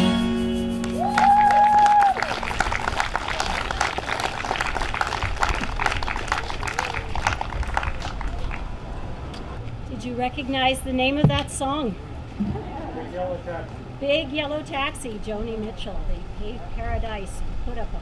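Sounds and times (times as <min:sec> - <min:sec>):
strummed acoustic guitar chord: 0:00.0 - 0:01.0
crowd applauding: 0:00.8 - 0:08.8.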